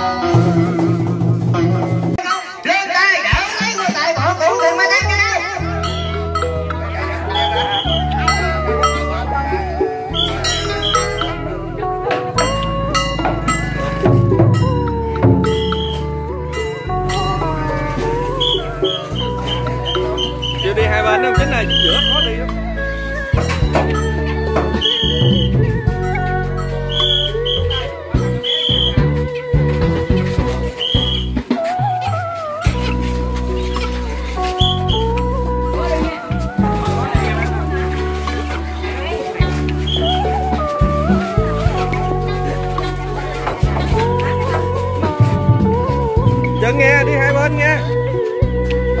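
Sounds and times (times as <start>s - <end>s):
sliding melody line: 0.0s - 49.0s
funeral music: 3.5s - 49.0s
sharp percussion strikes: 10.1s - 22.6s.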